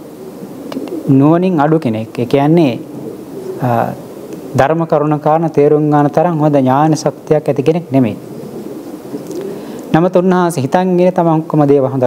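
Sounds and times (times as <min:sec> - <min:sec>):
man preaching: 0:01.1 - 0:02.9, 0:03.6 - 0:08.2, 0:09.9 - 0:12.0.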